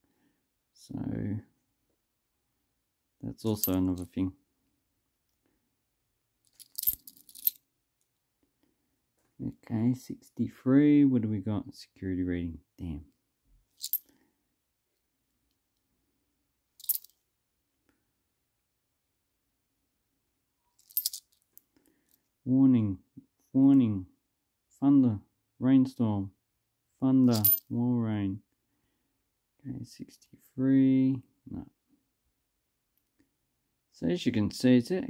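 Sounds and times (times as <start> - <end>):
coins clinking: 16.8 - 17.1, 20.8 - 21.2, 27.3 - 27.6.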